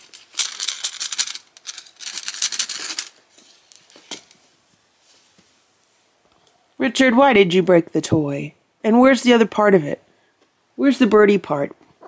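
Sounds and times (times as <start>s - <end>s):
toy rattling on carpet: 0.0s - 4.0s.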